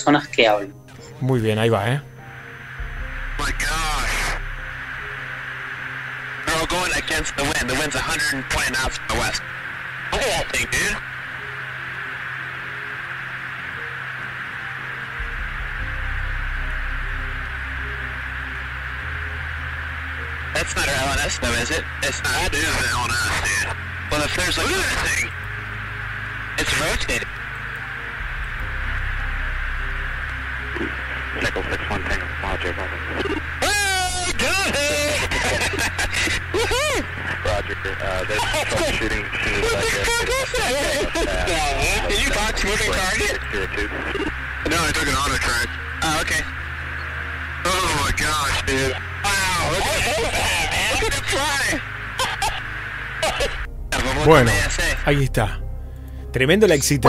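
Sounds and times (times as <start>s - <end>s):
radio hiss and hum: 0.0s - 57.0s
garbled radio voices: 2.8s - 11.4s, 20.5s - 25.5s, 26.4s - 27.5s, 30.5s - 55.6s.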